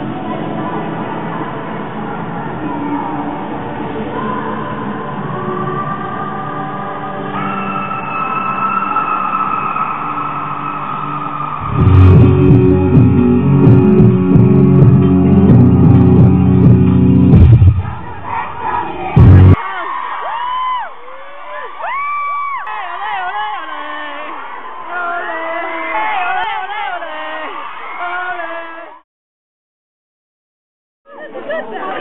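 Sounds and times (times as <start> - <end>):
crowd cheering and shouting: 7.0 - 29.0
rock band with guitars and drums: 11.6 - 17.8.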